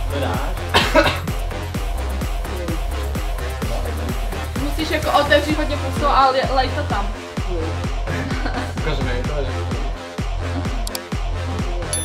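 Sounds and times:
background music with steady beat: 0.0 - 12.0
person coughing: 0.7 - 1.3.

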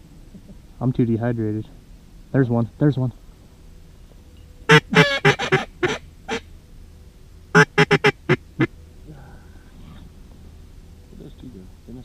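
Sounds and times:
duck call quacks: 4.7 - 6.5, 7.5 - 8.7.

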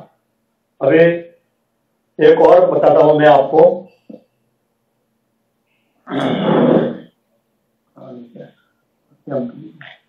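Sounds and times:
man clearing his throat: 6.1 - 7.1.

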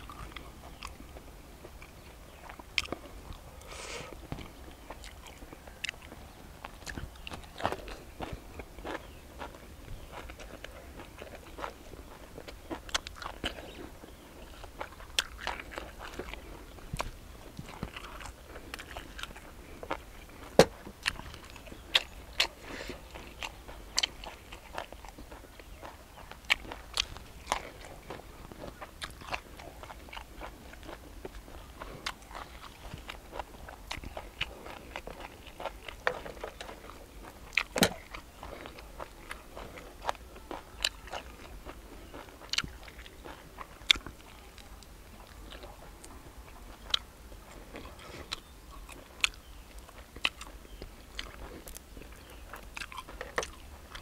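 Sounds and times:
person chewing with crunches: 0.0 - 54.0.

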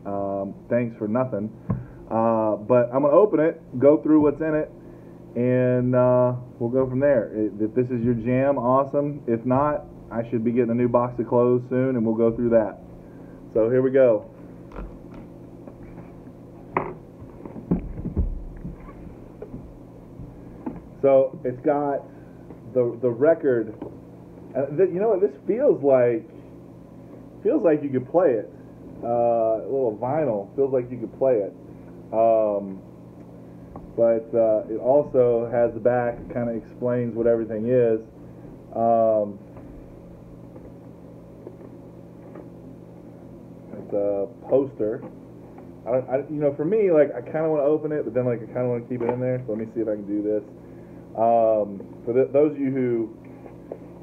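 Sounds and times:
low room hum: 0.0 - 54.0
cardboard knocks and rustles: 16.8 - 20.9.

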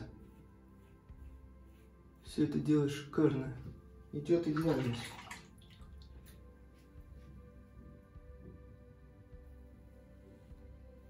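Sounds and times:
quiet background music: 0.0 - 11.0
water splashing in sink: 4.4 - 6.1.

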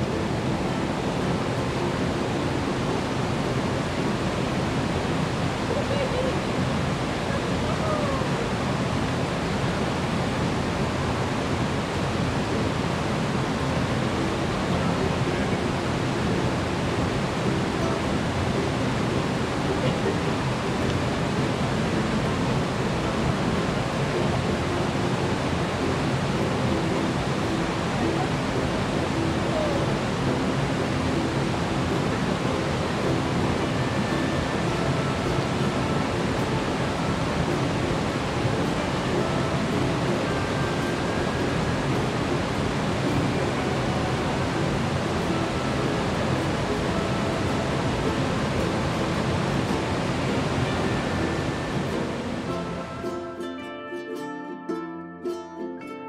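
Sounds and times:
stream rushing over boulders: 0.0 - 53.6.

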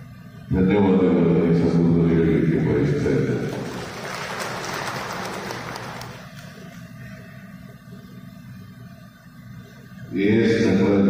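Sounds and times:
audience applauding: 3.4 - 7.0.

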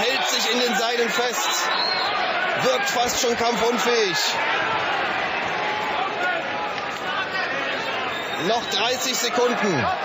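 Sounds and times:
crowd shouting: 0.0 - 10.0.

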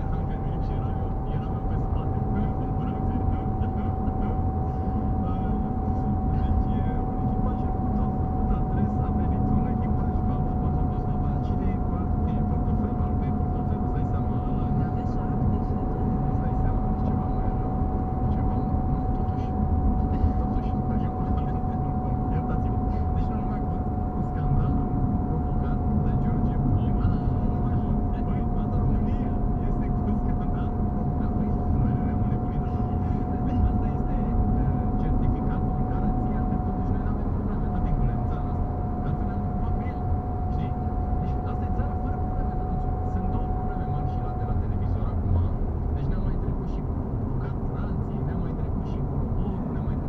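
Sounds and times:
constant thin whine: 0.0 - 50.0
road and engine rumble: 0.0 - 50.0.

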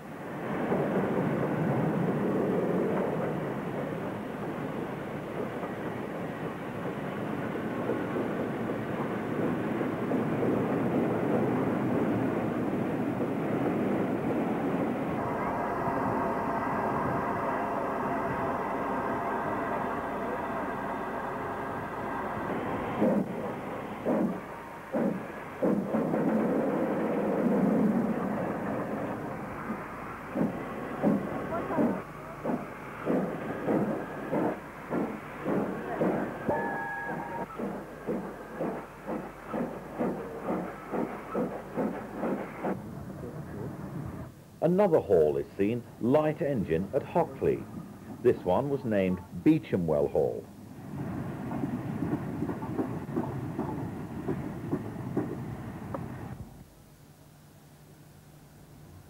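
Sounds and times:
steam locomotive exhaust beats: 0.0 - 56.7
steam hissing: 0.2 - 42.9.

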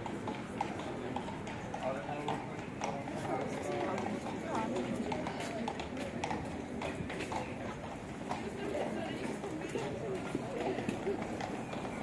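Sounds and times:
footsteps on stone paving: 0.0 - 12.0
passers-by talking: 0.0 - 12.0.

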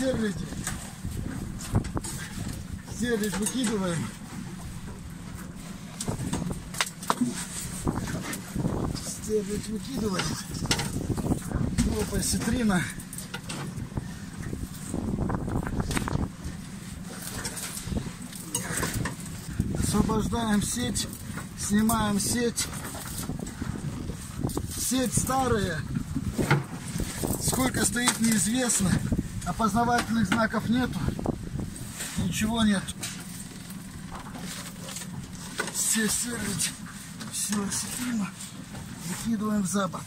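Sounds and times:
boat engine rumble: 0.0 - 40.0
wet fishing net rustling: 3.5 - 21.9.

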